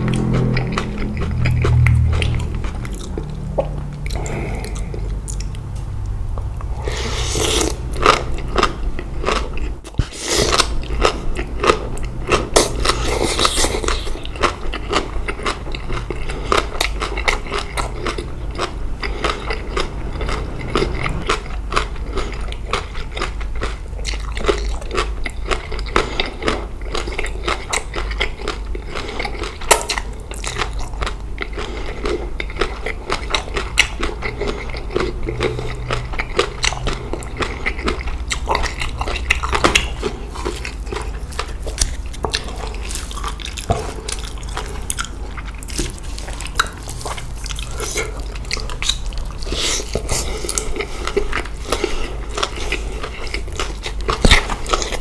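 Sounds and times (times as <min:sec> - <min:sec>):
wet crisp chewing: 0:00.0 - 0:55.0.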